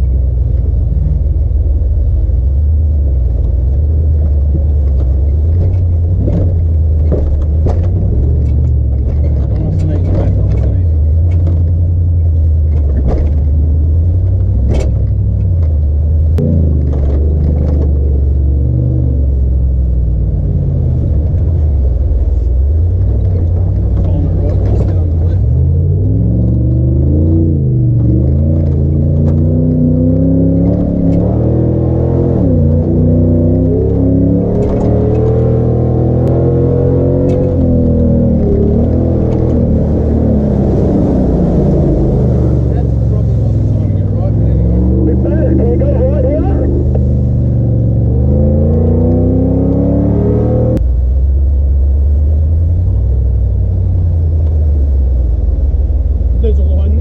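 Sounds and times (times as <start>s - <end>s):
truck engine revving: 4.9s - 57.0s
water splashing over truck: 39.8s - 44.6s.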